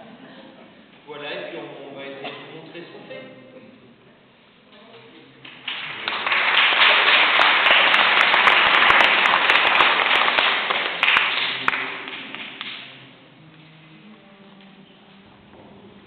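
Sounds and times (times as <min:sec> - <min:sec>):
audience applauding: 0:05.4 - 0:13.0.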